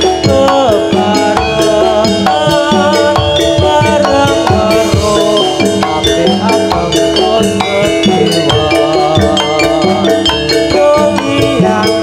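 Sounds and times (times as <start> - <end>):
tuned percussion and drums: 0.0 - 12.0.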